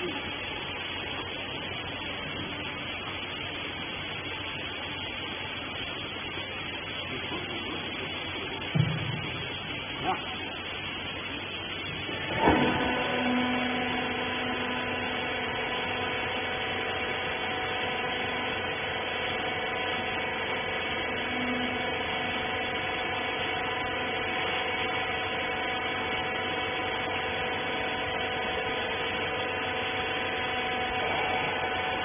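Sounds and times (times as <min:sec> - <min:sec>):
hydraulic power unit humming: 0:00.0 - 0:32.0.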